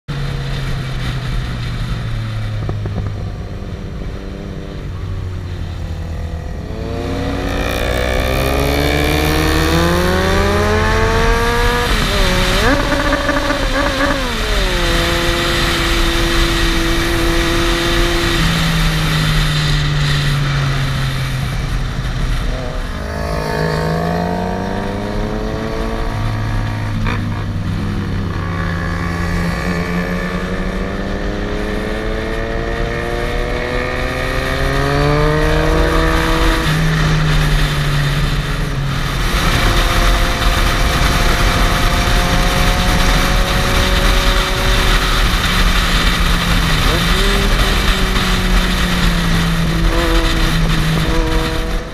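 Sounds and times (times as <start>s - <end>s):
motorcycle engine accelerating: 0.1s - 51.9s
wind rushing: 0.8s - 51.9s.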